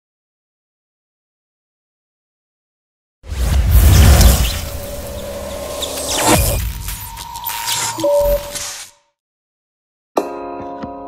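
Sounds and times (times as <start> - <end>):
deep boom: 3.3 - 6.9
steady tone: 3.5 - 8.6
short glitchy clicks: 4.0 - 9.0.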